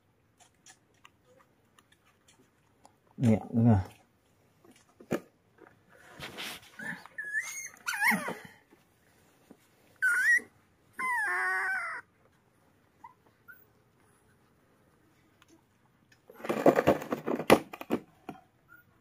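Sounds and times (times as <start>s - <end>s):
puppy whimpering: 6.8s - 8.6s, 10.0s - 12.2s, 13.0s - 14.2s.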